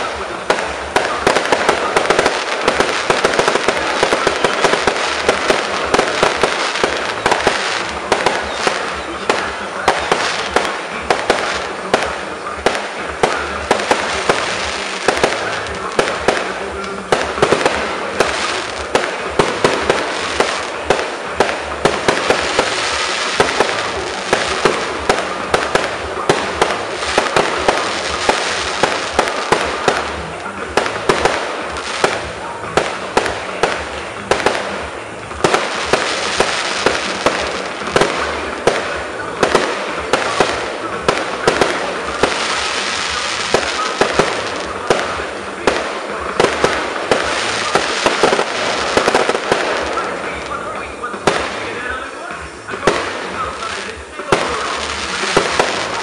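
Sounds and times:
fireworks bangs and crackles: 0.0s - 56.0s.

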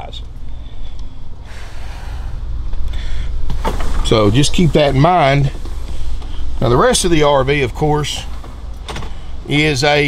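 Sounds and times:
constant low rumble: 0.0s - 10.0s.

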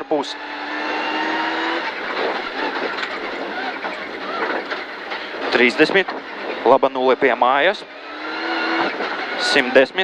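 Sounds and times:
car engine revving high: 0.0s - 10.0s.

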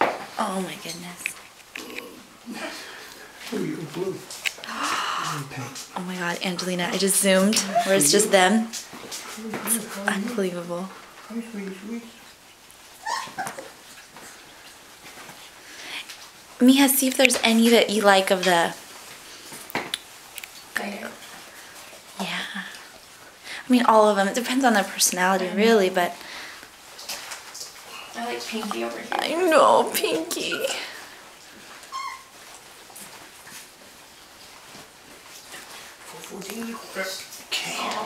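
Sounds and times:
puppies yipping: 13.0s - 13.8s, 31.8s - 32.5s.

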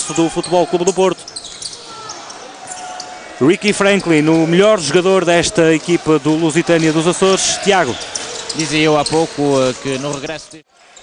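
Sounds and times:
indoor arena crowd noise: 0.0s - 11.0s.

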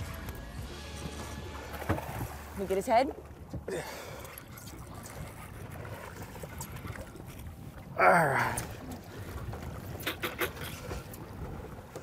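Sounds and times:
water sloshing against boat: 0.0s - 12.0s.

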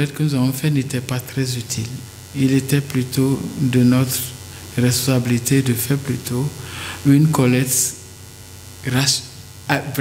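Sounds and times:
man talking: 0.0s - 8.0s, 8.8s - 10.0s
electrical hum: 0.0s - 10.0s.

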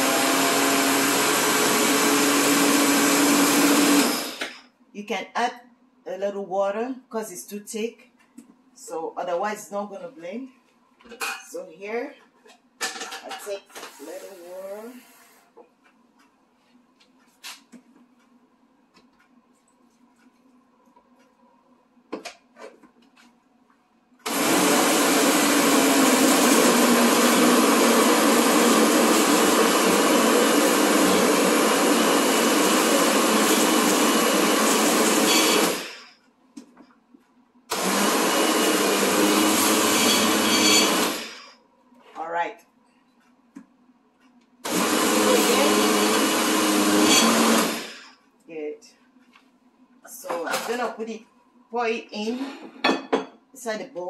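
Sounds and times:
blender running: 0.0s - 4.6s, 24.2s - 36.1s, 37.7s - 41.6s, 44.6s - 48.2s.

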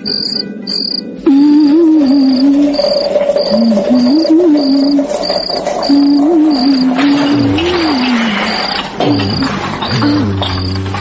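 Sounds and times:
wavering melody: 0.0s - 5.2s
crickets chirping: 0.0s - 9.4s.

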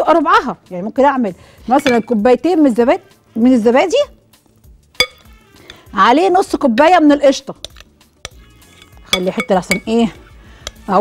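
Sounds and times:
utensil clinking glass bowl: 1.7s - 2.2s, 5.0s - 5.9s, 7.6s - 10.9s.

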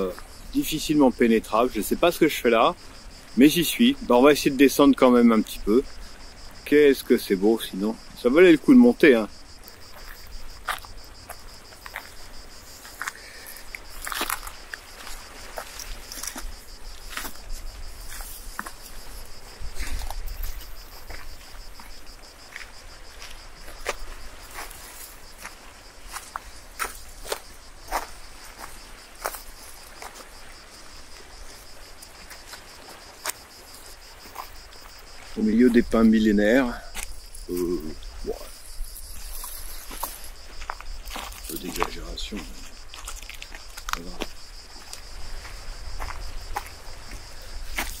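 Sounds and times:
insects chirring: 0.0s - 48.0s
footsteps on stony trail: 9.4s - 35.3s, 38.9s - 48.0s.

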